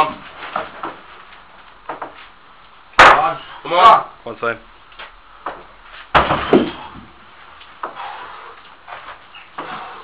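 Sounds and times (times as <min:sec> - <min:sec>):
stone landing on wooden pallets: 0:05.4 - 0:07.2.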